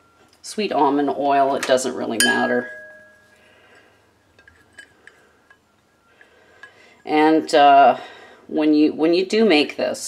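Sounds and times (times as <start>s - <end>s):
metal ringing: 1.8s - 7.1s.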